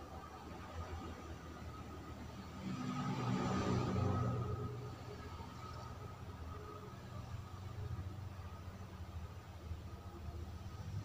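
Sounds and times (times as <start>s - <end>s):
faint steady hum: 0.0s - 11.0s
vehicle passing by: 0.9s - 7.6s.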